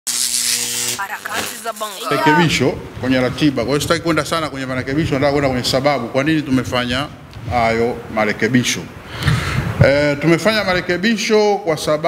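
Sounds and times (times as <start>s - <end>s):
electrical buzz with hiss: 0.1s - 2.4s
person speaking: 1.0s - 2.6s.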